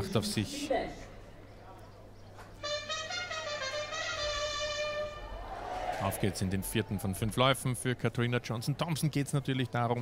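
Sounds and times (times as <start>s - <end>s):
quiet crowd: 0.0s - 10.0s
brass musical phrase: 2.6s - 5.4s.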